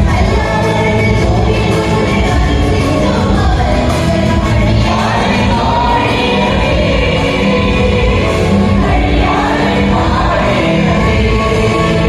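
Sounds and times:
youth choir singing: 0.0s - 12.0s.

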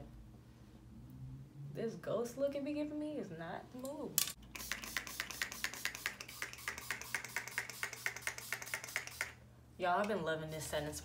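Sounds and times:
spray bottle spritzing: 4.5s - 9.4s.

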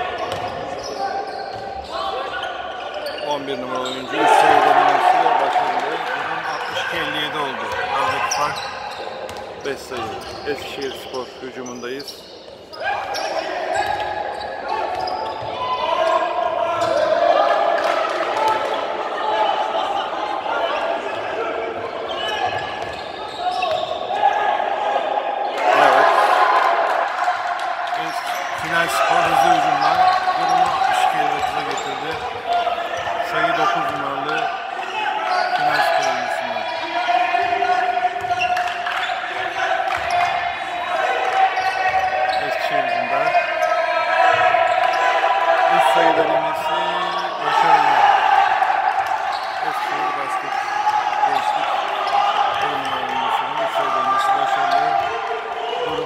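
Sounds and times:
players calling out: 0.0s - 56.0s.

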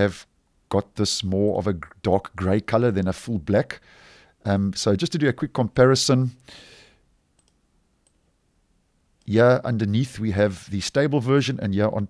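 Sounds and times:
computer mouse clicks: 7.4s - 8.2s.

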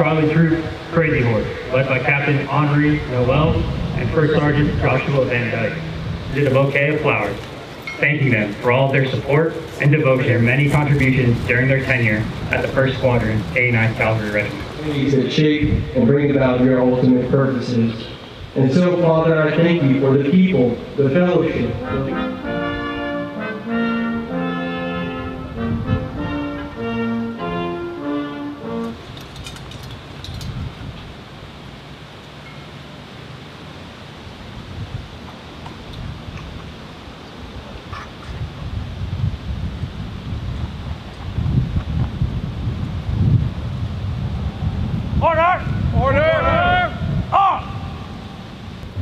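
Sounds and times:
brass band playing long notes: 0.0s - 15.4s, 19.7s - 29.1s
wind noise on microphone: 0.0s - 31.7s, 34.2s - 49.0s
person shouting drill command: 45.2s - 48.1s.

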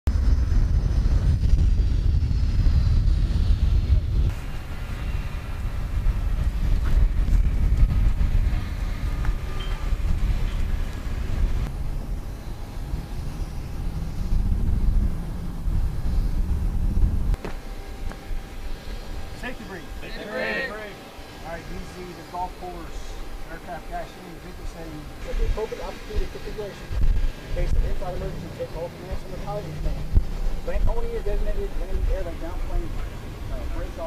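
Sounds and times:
low rumbling noise: 0.1s - 34.0s
faint high whining tones: 4.3s - 34.0s.

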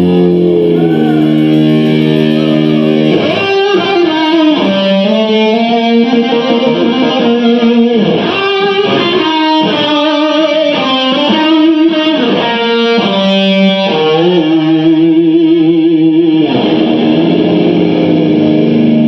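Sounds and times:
distorted electric guitar: 0.0s - 19.0s.

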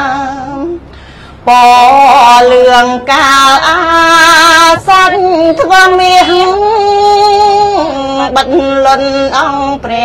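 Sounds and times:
woman chanting: 1.5s - 10.0s.

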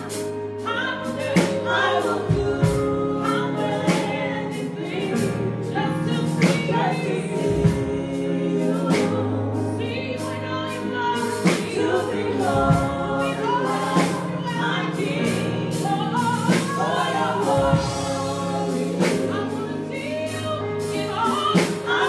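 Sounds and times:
singers singing gospel song: 0.0s - 22.0s.

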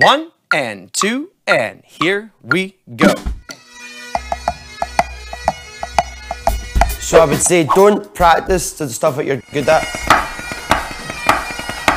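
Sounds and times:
snare drum rudimental pattern: 0.0s - 8.7s, 9.6s - 11.9s.

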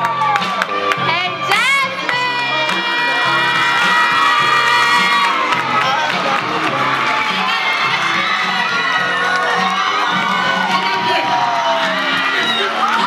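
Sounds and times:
crowd cheering and screaming: 0.0s - 13.0s
music playing: 0.0s - 13.0s.

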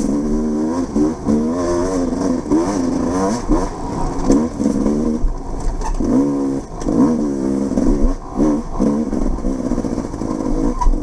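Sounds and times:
dirt bike engine revving: 0.0s - 5.4s, 6.0s - 10.1s.

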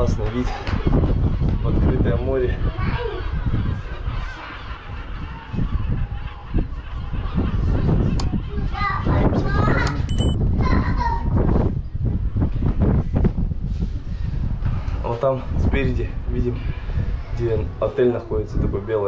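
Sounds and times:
wind rumble on microphone: 0.0s - 19.0s
seagulls calling: 2.6s - 8.1s
bell-like chime: 9.9s - 10.4s.

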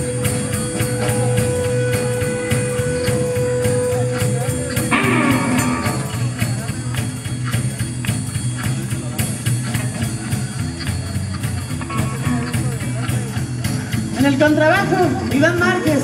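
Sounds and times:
drum kit with cymbals: 0.0s - 16.0s
electric guitar: 0.0s - 16.0s
upright bass: 0.0s - 16.0s.

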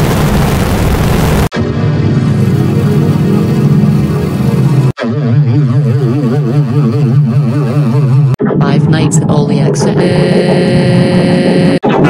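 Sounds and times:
warbling electronic buzzing drone: 0.0s - 12.0s.

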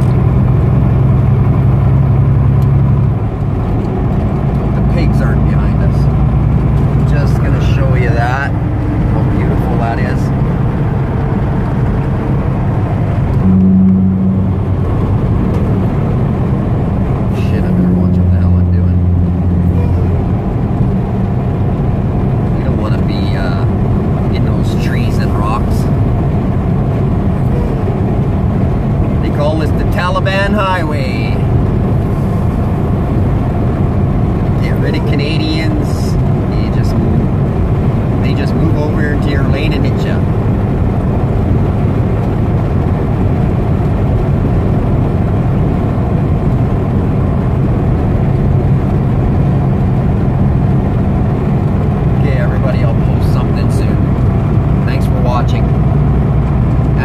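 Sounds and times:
road and tyre noise: 0.0s - 57.0s
truck diesel engine droning: 0.0s - 57.0s.

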